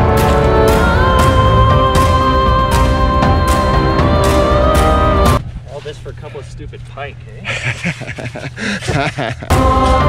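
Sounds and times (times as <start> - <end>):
background music: 0.0 - 5.4, 9.5 - 10.0
laughter: 7.4 - 9.5.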